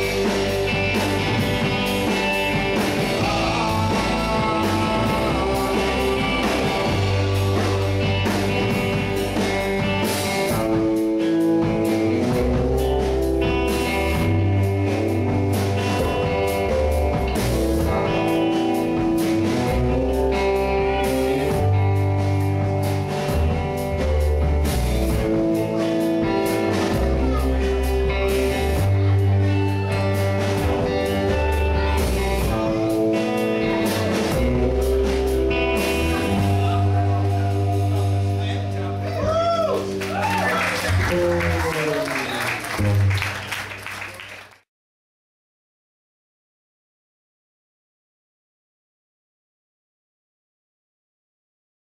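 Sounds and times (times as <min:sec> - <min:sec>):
electric bass low notes: 0:00.0 - 0:43.4
electric guitar: 0:00.0 - 0:44.0
drum kit: 0:00.0 - 0:44.4.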